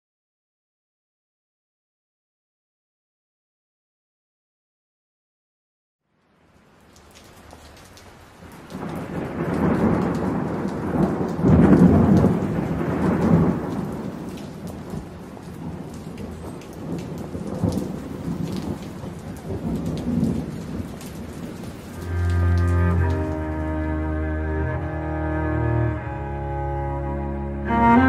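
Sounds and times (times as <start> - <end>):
rain falling steadily: 6.1 - 28.0
thunder rumbling: 8.7 - 26.9.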